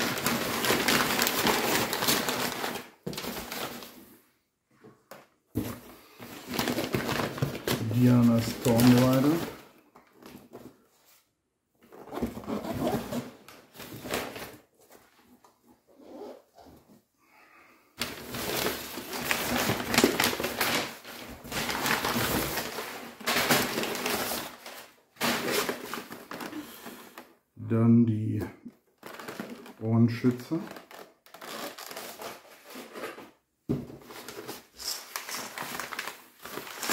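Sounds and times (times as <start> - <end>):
packing paper rustling: 0.0 - 4.2, 5.1 - 11.1, 11.9 - 15.4, 18.0 - 27.4, 28.9 - 33.4, 34.0 - 36.9.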